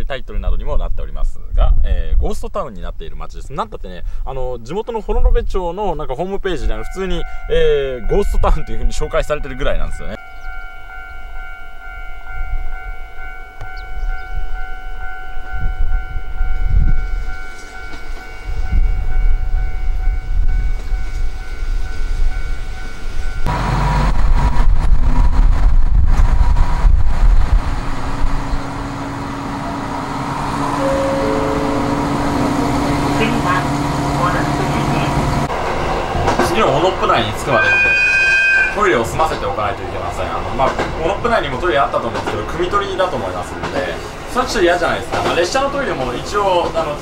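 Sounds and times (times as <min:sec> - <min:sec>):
diesel railcar high whine: 0:06.8 - 0:08.5, 0:10.1 - 0:47.0
low engine rumble: 0:10.2 - 0:37.5.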